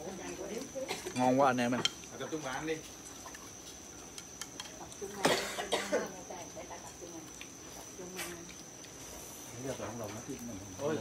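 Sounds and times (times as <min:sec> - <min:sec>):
person coughing: 0:05.2 - 0:06.1.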